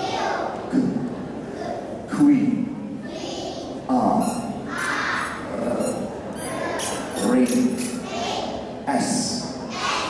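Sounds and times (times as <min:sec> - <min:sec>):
children chanting together: 0:00.0 - 0:02.0, 0:03.0 - 0:03.8, 0:04.7 - 0:05.6, 0:06.4 - 0:08.7, 0:09.7 - 0:10.0.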